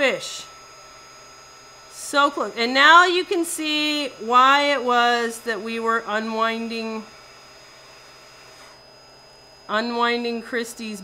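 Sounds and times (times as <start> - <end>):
thin high-pitched whine: 0.0 - 11.0.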